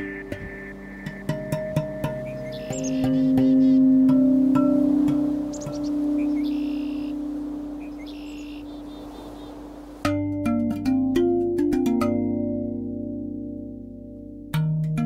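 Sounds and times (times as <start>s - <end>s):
low sustained drone: 0.0s - 8.5s
ambient electronic music: 0.0s - 9.4s.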